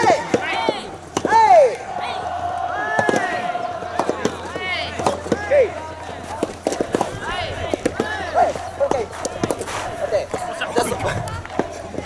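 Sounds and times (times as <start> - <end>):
rackets hitting tennis ball: 0.0 - 1.8, 2.9 - 12.0
players shouting: 0.0 - 12.0.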